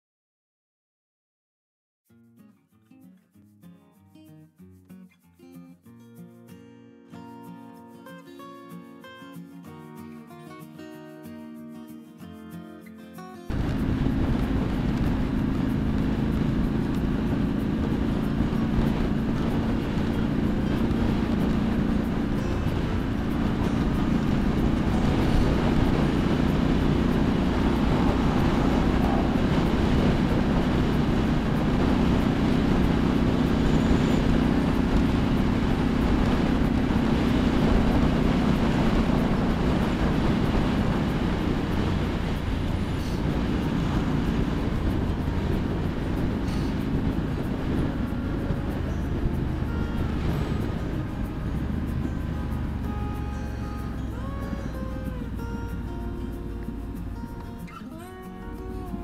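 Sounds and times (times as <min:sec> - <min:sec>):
heavy wind rush: 0:13.5 - 0:57.8
motorcycle engine cruising: 0:13.5 - 0:59.0
road noise: 0:13.5 - 0:59.0.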